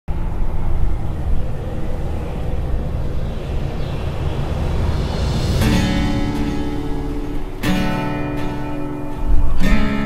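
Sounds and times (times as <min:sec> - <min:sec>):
low steady rumble: 0:00.1 - 0:09.6.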